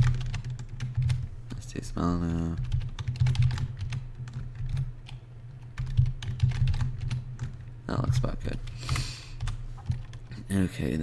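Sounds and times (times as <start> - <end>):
computer keyboard typing: 0.0 - 1.6, 2.2 - 10.3.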